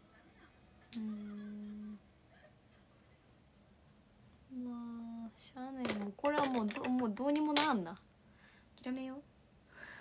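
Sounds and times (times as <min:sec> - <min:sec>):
woman humming: 0:01.0 - 0:02.0.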